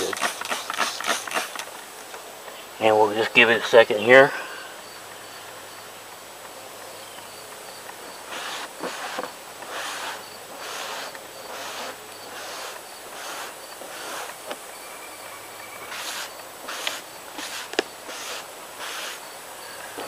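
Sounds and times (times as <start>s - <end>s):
paper towel wiping wet paper: 8.3s - 14.4s, 15.9s - 19.2s.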